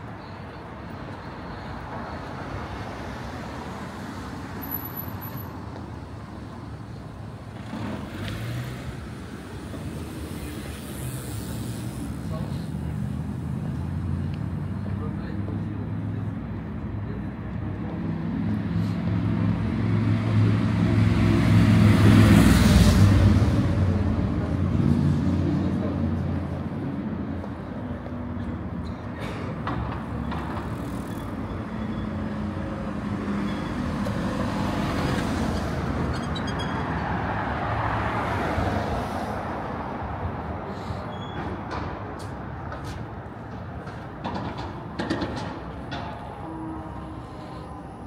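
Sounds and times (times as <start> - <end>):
road noise: 0.0 - 48.0.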